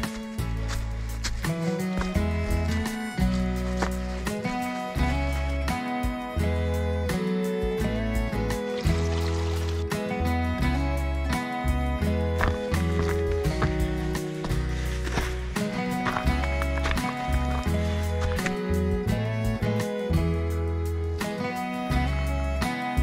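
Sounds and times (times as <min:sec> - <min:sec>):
acoustic guitar: 0:00.0 - 0:23.0.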